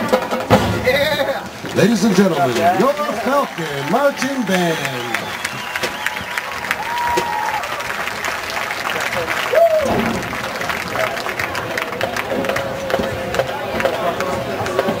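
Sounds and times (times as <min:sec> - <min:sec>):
voices chattering: 0:00.7 - 0:06.6, 0:10.0 - 0:15.0
crowd clapping and cheering: 0:01.2 - 0:15.0
loud shout: 0:02.6 - 0:08.0, 0:09.4 - 0:10.2.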